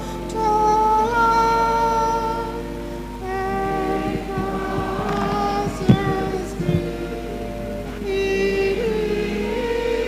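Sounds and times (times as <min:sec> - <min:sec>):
steady low hum: 0:00.0 - 0:10.0
person humming a slow melody: 0:03.2 - 0:10.0.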